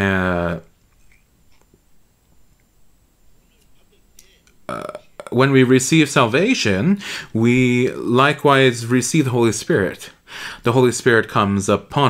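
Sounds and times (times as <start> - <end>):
man saying uh: 0.0 - 0.7, 4.7 - 12.0.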